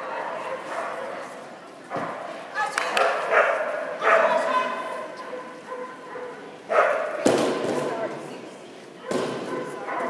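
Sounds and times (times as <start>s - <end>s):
dog barking: 0.0s - 1.2s, 3.2s - 7.2s, 9.0s - 10.0s
drawn-out pitched dog sounds: 3.2s - 7.2s.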